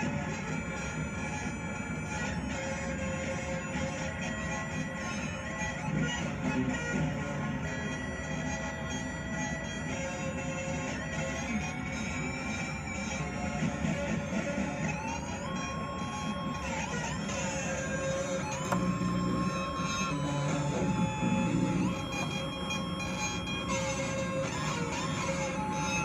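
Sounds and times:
synthesizer flute-like notes: 7.9 - 26.0
buzzy low synth drone: 15.1 - 26.0.

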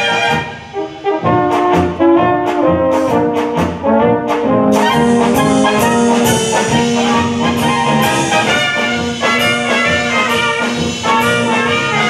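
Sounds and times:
brass band playing: 0.0 - 12.0
drum kit beat: 0.0 - 12.0.

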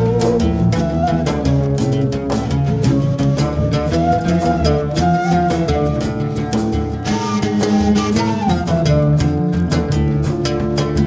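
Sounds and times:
hand percussion: 0.0 - 11.0
oud and plucked strings: 0.0 - 11.0.

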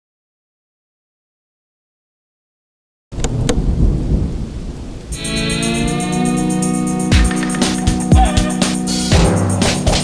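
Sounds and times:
music with sustained chords: 5.1 - 10.0.

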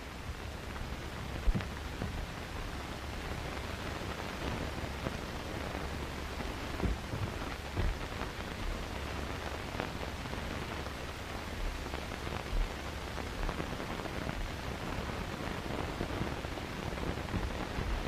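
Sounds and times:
faint crackles: 0.0 - 18.0
film soundtrack hiss: 0.0 - 18.0.

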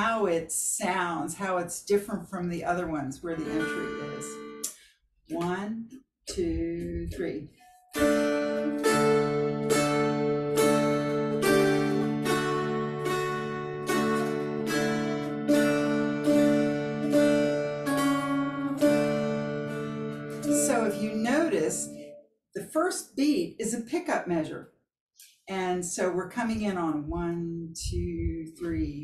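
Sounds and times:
person speaking: 0.0 - 4.4, 5.3 - 7.5, 20.5 - 22.0, 25.5 - 29.0
mountain dulcimers strummed: 2.8 - 4.7, 6.5 - 22.2.

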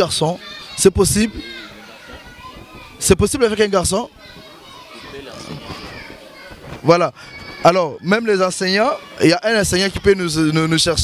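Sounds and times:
murmur of children's voices: 0.0 - 11.0.

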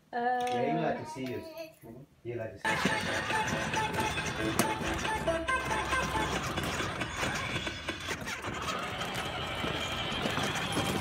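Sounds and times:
toy car wheels rattling on bricks: 2.7 - 11.0.

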